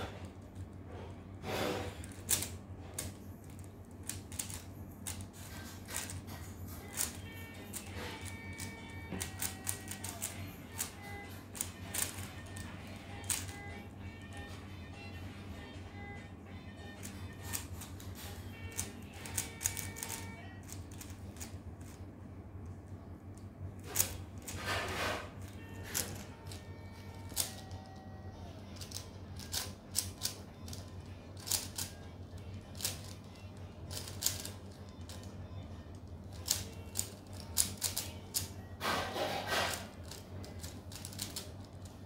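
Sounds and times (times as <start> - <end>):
puzzle cube clicking: 2.0 - 13.7, 17.0 - 22.0, 25.4 - 27.8, 28.8 - 35.3, 36.0 - 38.6, 39.7 - 42.0
puzzle cube rattling: 2.0 - 14.4, 16.9 - 22.2, 28.5 - 38.8, 39.4 - 42.0
puzzle cube layers clicking: 4.0 - 13.6, 18.7 - 22.0, 39.8 - 42.0.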